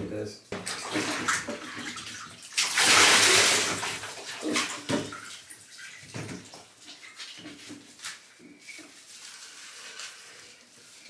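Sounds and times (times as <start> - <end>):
water splashing in a bathtub: 0.5 - 11.0
hands rubbing wet fur: 6.8 - 11.0.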